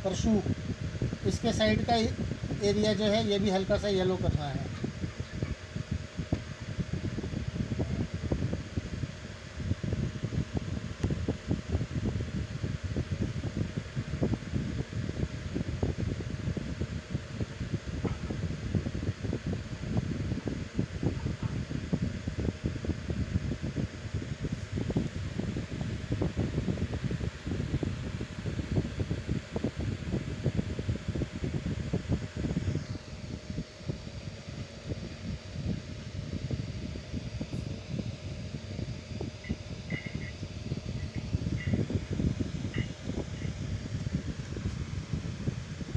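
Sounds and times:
airflow buffeting microphone: 0:00.0 - 0:45.9
fan air rumbling: 0:00.0 - 0:45.9.

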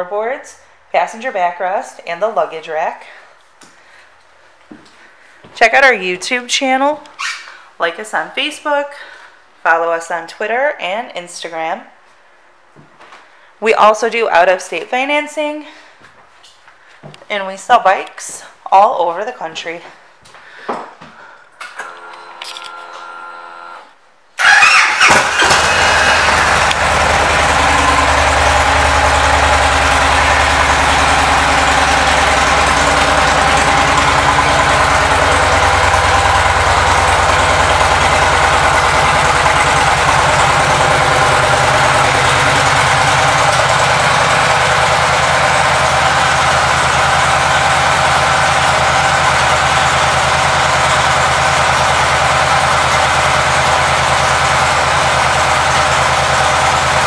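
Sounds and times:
motorcycle engine idling: 0:24.4 - 0:57.0.

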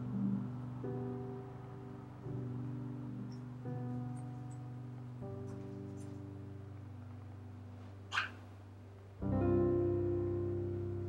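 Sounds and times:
soft guitar music: 0:00.0 - 0:11.0
high-pitched cat mew: 0:08.1 - 0:08.4.

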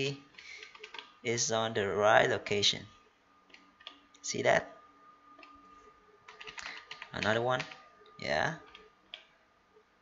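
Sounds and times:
faint high hum: 0:00.0 - 0:10.0
computer mouse and key clicks: 0:00.3 - 0:01.2, 0:03.4 - 0:04.2, 0:05.4 - 0:05.6, 0:06.3 - 0:09.3.

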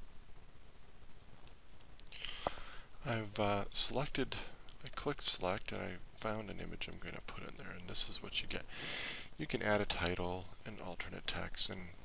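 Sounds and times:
computer mouse clicks: 0:01.1 - 0:02.5.

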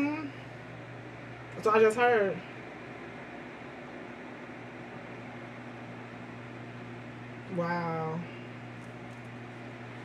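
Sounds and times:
low even hum: 0:00.0 - 0:10.0.

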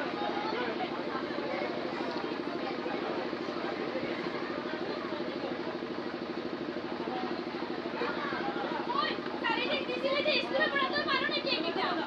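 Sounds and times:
faint murmuring voices: 0:00.0 - 0:12.0
pulsing mechanical hum: 0:00.0 - 0:12.0.

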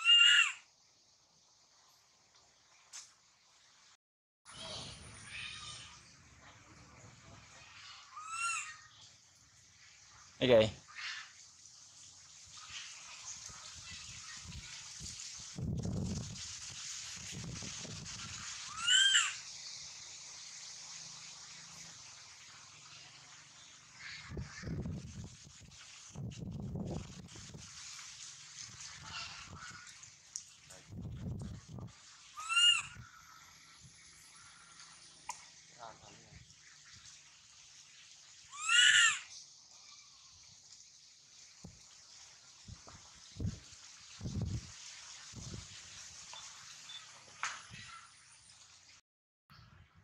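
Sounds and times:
baby macaque call: 0:00.0 - 0:00.6, 0:07.8 - 0:08.9, 0:18.7 - 0:19.4, 0:32.3 - 0:33.2, 0:38.5 - 0:40.1.

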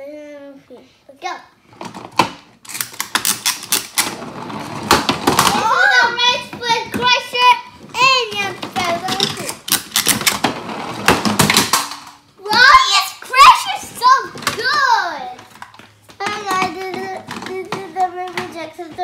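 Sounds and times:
child's high-pitched voice: 0:00.0 - 0:01.6, 0:05.5 - 0:09.6, 0:12.4 - 0:15.5, 0:16.2 - 0:19.0.

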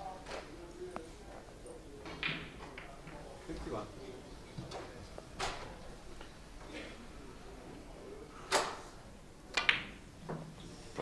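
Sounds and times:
billiard balls clicking: 0:09.5 - 0:10.5.

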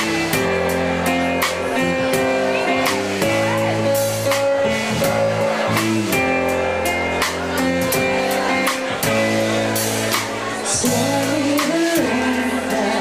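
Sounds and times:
strummed guitar chords: 0:00.0 - 0:13.0.

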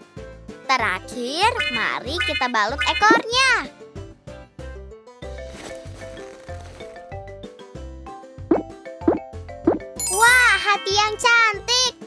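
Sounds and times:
cartoon background music: 0:00.0 - 0:12.0
cartoon plop sound effects: 0:08.5 - 0:10.4.

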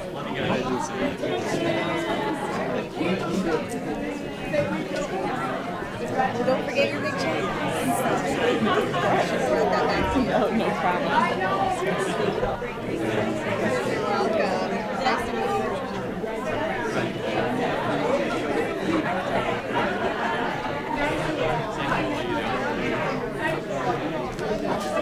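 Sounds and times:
crowd chatter in a large hall: 0:00.0 - 0:25.0.

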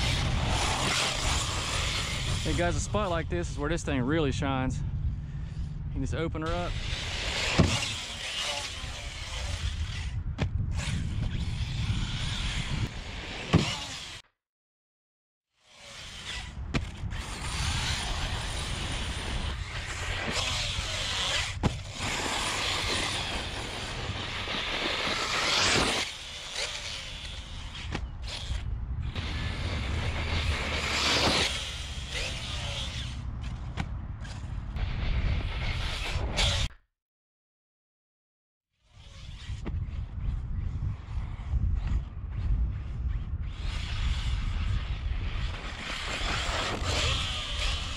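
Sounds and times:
rc truck electric motor whine: 0:00.0 - 0:02.8, 0:06.6 - 0:14.2, 0:15.6 - 0:36.7, 0:43.4 - 0:47.9
wind rumble on microphone: 0:00.0 - 0:13.8, 0:16.0 - 0:25.8, 0:26.4 - 0:36.7, 0:38.9 - 0:47.9.

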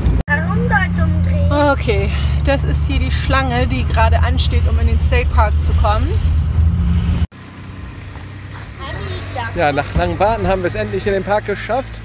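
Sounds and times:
pickup truck rumble from inside: 0:00.0 - 0:11.8.

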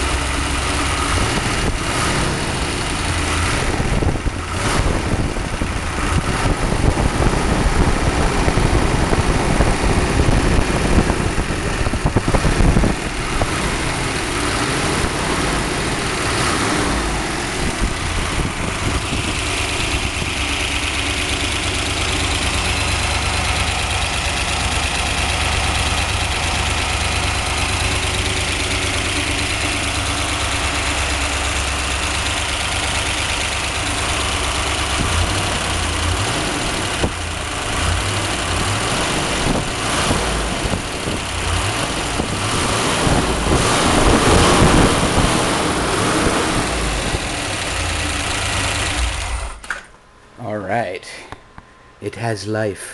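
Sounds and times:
car engine running: 0:00.0 - 0:49.7.

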